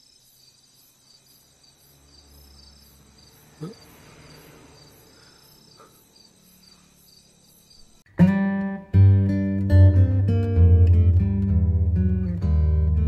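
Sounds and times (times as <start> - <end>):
crickets chirping: 0.0 - 8.1.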